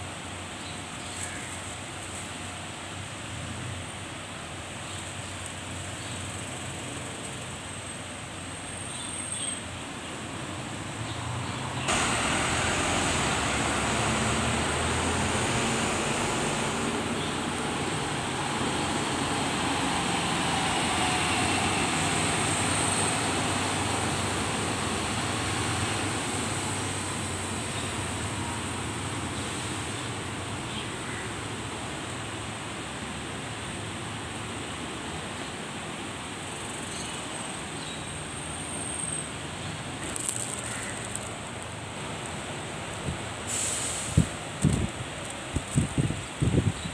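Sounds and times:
traffic rumble and hiss: 0:00.0 - 0:46.9.

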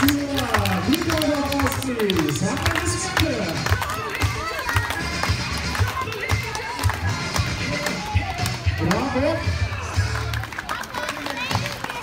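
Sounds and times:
music with repeating bass beat: 0:00.5 - 0:10.4.

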